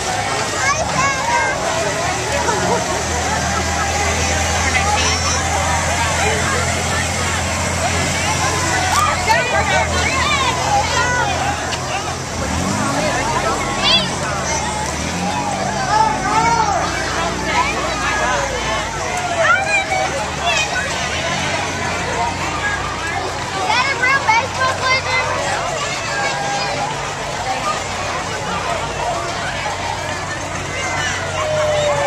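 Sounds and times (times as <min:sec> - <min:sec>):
crowd chattering: 0:00.0 - 0:32.0
low hum of vehicle engines: 0:00.0 - 0:32.0.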